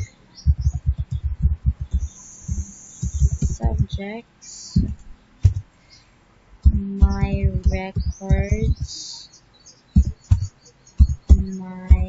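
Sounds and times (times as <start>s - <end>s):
rapid typing on keyboard: 0.0s - 3.9s.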